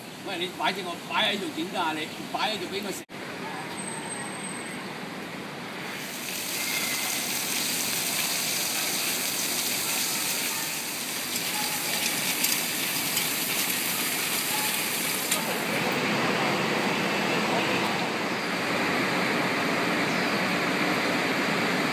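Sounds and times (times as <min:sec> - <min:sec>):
fountain water splashing: 0:06.0 - 0:16.3.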